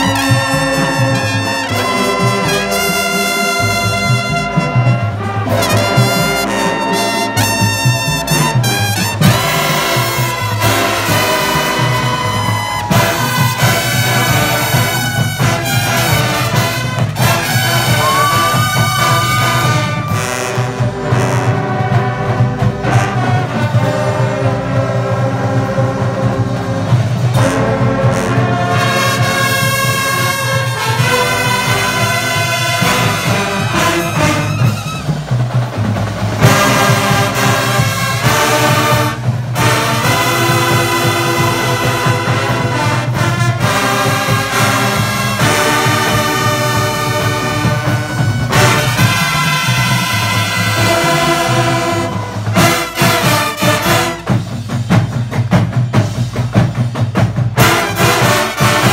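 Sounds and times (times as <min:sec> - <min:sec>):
brass bugles playing chords: 0:00.0 - 0:35.4, 0:36.4 - 0:54.6, 0:57.6 - 0:58.9.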